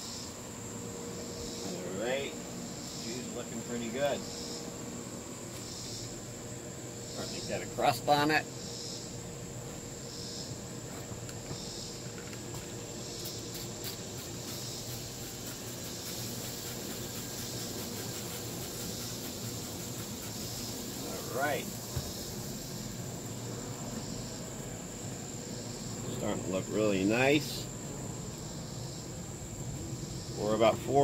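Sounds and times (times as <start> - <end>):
insects trilling: 0.0 - 31.0
soft insect chirps: 0.0 - 31.0.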